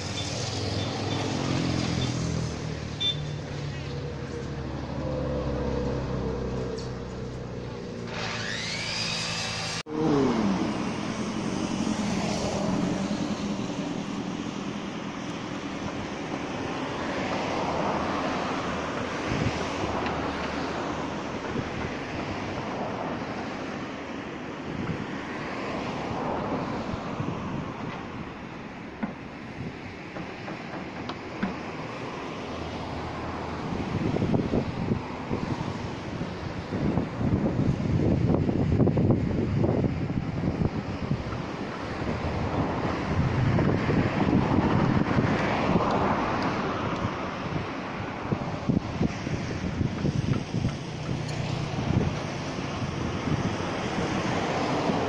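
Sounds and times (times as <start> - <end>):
wind buffeting microphone: 33.0 - 55.0.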